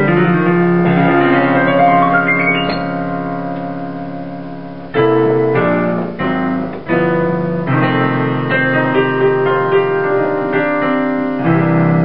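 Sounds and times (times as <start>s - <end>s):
blues piano chords: 0.0s - 12.0s.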